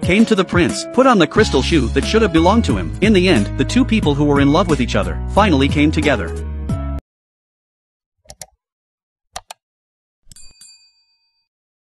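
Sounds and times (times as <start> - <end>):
bell chime: 10.4 - 11.5.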